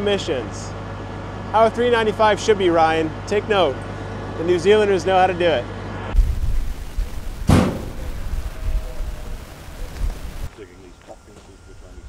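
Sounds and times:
short loud rush of noise: 0:06.1 - 0:10.5.

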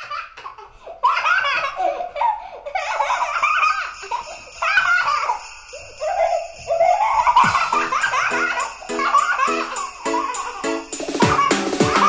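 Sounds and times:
young children laughing: 0:00.0 - 0:12.0
sleigh bells jingling: 0:02.8 - 0:12.0.

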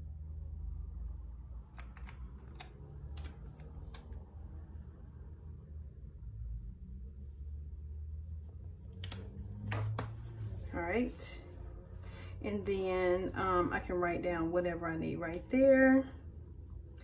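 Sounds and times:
paper sticker crackling: 0:01.6 - 0:04.2.

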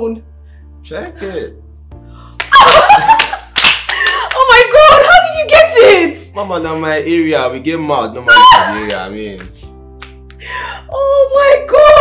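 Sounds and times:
hand claps: 0:02.4 - 0:04.5, 0:08.7 - 0:10.4.

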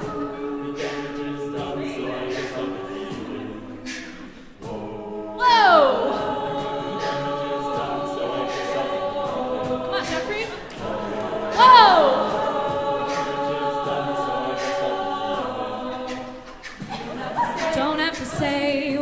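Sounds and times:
a cappella group singing chords: 0:00.0 - 0:19.0
lead voice falling slide: 0:11.6 - 0:12.4.

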